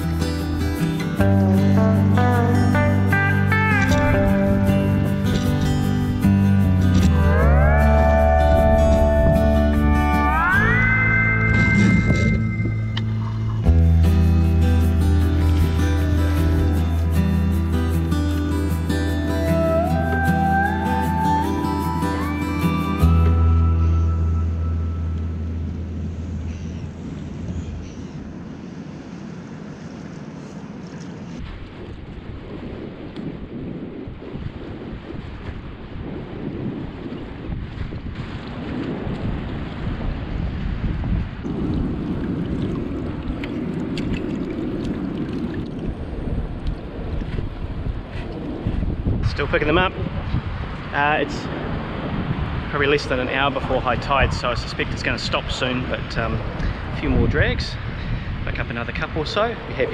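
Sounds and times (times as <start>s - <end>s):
background music rising notes: 0.0s - 26.2s
wind buffeting microphone: 0.0s - 59.9s.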